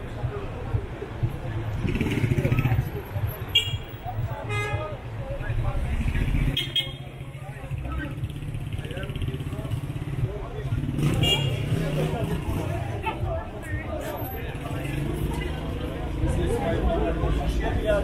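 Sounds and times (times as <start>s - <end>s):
passers-by talking: 0.0s - 18.0s.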